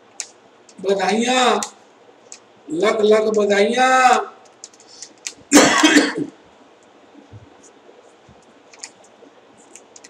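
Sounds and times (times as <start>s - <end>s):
man coughing: 5.5s - 6.4s.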